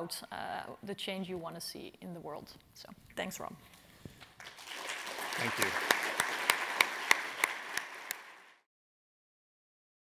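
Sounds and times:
audience applauding: 0:04.4 - 0:08.7.

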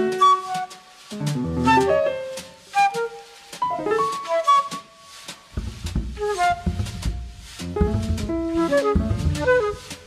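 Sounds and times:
drum and cymbal strokes: 0:00.0 - 0:10.0
piano: 0:00.0 - 0:10.0
flute playing quick phrases: 0:00.1 - 0:04.9, 0:06.2 - 0:10.0
low piano or bass notes: 0:01.2 - 0:02.0, 0:05.6 - 0:09.7.

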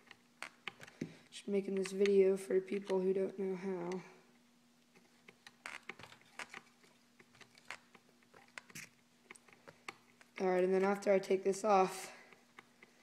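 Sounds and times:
faint steady hum: 0:00.0 - 0:13.0
screwdriver clicks and scrapes: 0:05.0 - 0:10.6.

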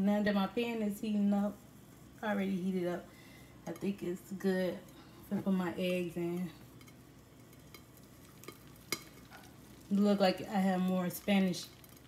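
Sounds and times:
eggs sizzling in frying pan: 0:00.5 - 0:12.0.

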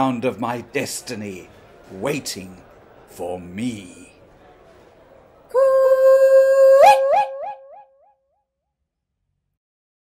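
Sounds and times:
person calling coo-ee with echo: 0:05.5 - 0:08.1.

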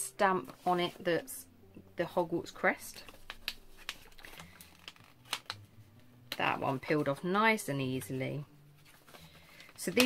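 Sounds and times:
paper rustling: 0:03.0 - 0:05.6, 0:08.8 - 0:10.0.

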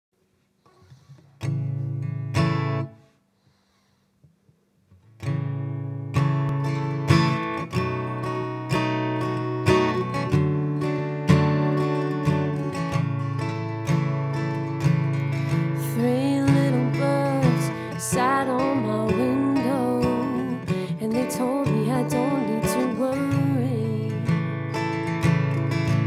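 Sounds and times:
acoustic guitar strumming: 0:01.1 - 0:03.0, 0:05.0 - 0:26.0.

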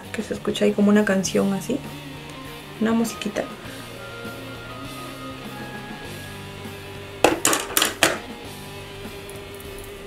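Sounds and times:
small hard objects clattering: 0:07.2 - 0:08.2.

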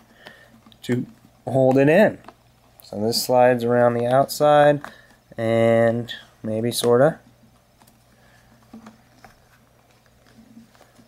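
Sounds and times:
handling rustle: 0:06.6 - 0:11.0.

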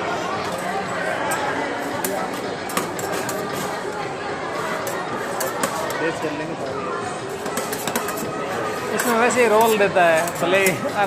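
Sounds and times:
spatulas tapping and scraping metal: 0:00.5 - 0:03.9, 0:04.6 - 0:06.0, 0:07.3 - 0:11.0.

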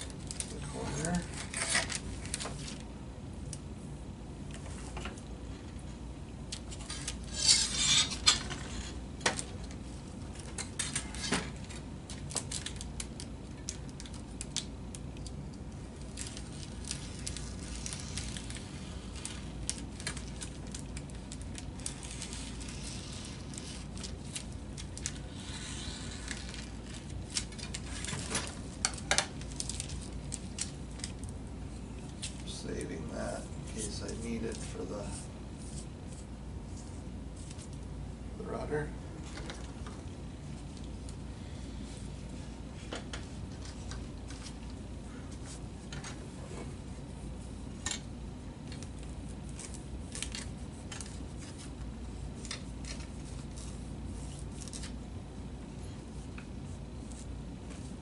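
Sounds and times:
plastic film crinkling: 0:00.0 - 0:02.9, 0:06.6 - 0:15.3, 0:16.0 - 0:31.4, 0:48.6 - 0:55.0
low steady hum: 0:00.0 - 0:58.0.

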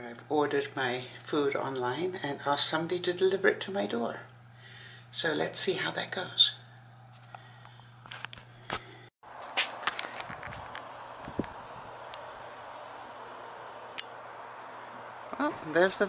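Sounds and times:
outdoor background noise: 0:00.0 - 0:16.0
steady low hum: 0:00.0 - 0:16.0.

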